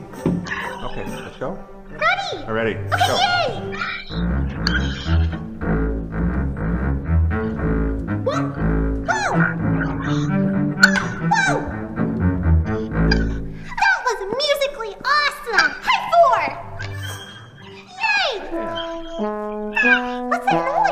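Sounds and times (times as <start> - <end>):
bowed double bass notes: 4.1 - 13.7.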